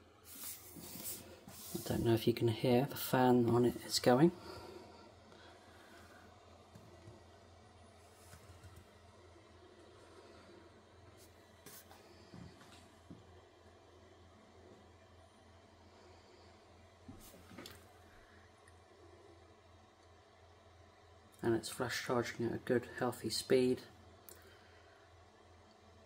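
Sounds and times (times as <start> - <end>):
faint cooling fan hum: 0.0 - 26.0.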